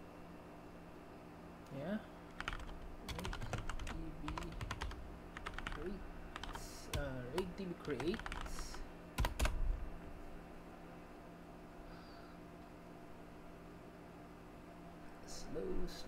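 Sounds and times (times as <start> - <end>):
keyboard typing: 2.3 - 9.6.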